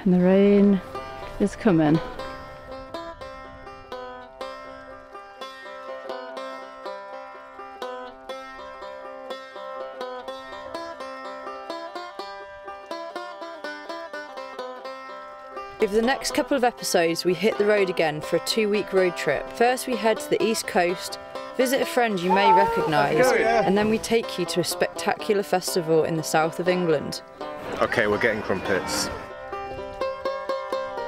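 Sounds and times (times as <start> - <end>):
banjo picking quick notes: 0.8 - 31.0.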